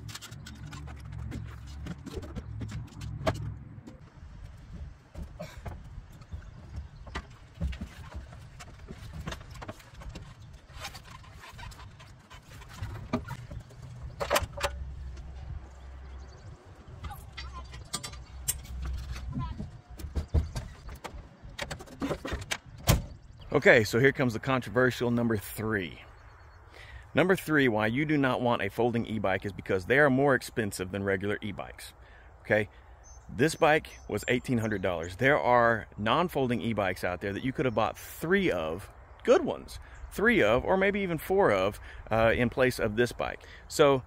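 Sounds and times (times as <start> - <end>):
folded bicycle frame rattling: 0.0 - 3.6, 4.6 - 15.6.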